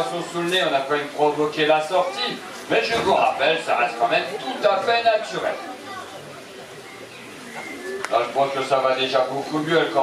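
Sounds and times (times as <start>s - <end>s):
bird low call: 6.8s - 8.1s.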